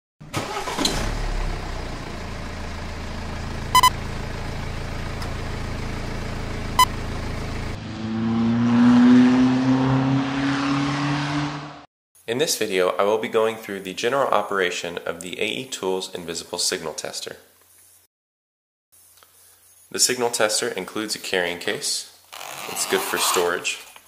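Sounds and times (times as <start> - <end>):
car engine running and revving: 0.8 - 11.9
short beeps: 3.8 - 4.0.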